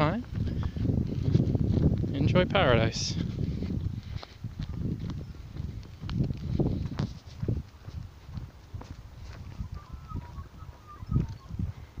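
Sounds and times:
footsteps on rough road: 0.0 - 12.0.

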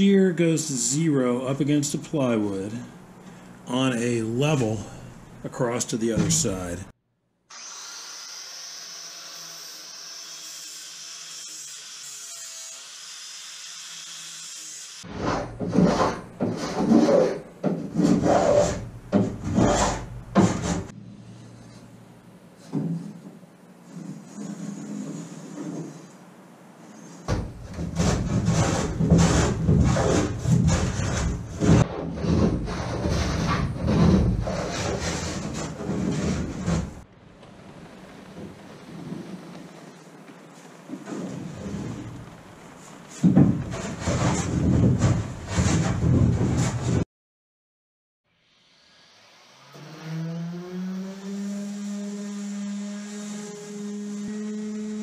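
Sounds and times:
rasping strokes on wood: 15.2 - 18.9.

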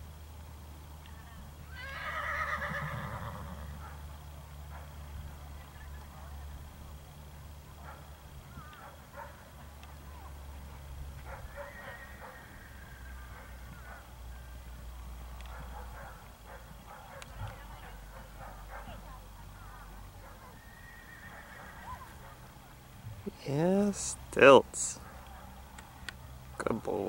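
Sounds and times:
distant voices: 0.7 - 27.0
horses whinnying: 1.7 - 3.8, 11.5 - 13.7, 20.6 - 22.2
hoofbeats on turf: 7.8 - 14.0.

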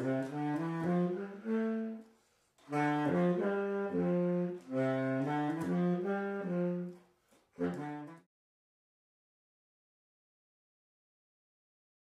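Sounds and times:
baritone saxophone melody: 0.0 - 8.3.

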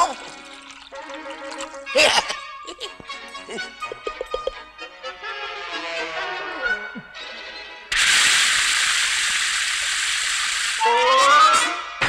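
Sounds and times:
hissing rush of water: 7.9 - 11.8
rising whistle-like tone: 10.8 - 11.9.

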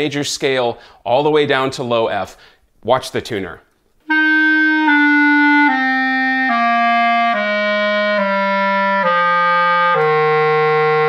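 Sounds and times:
clarinet playing descending scale: 4.0 - 11.0.

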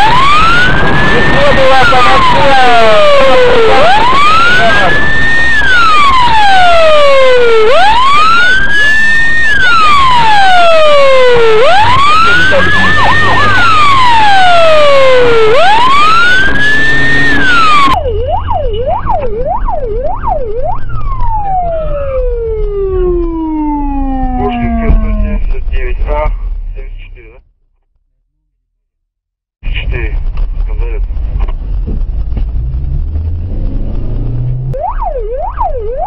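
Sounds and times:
siren fast yelps: 0.0 - 25.2, 34.8 - 36.0
police siren wailing: 0.0 - 25.5, 34.2 - 36.0
low engine drone: 0.0 - 27.4, 29.6 - 36.0.

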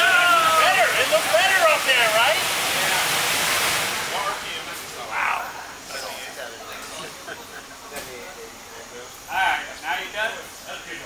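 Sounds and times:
people whooping and shouting: 0.0 - 1.6, 5.1 - 5.6
loud rushing noise: 0.0 - 5.1.

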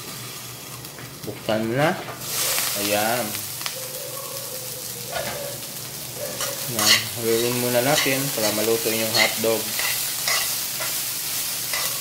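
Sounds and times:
food sizzling in a wok: 0.0 - 12.0.

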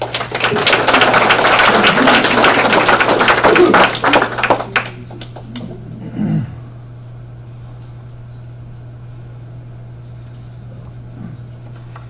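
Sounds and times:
audience applauding: 0.0 - 5.7.

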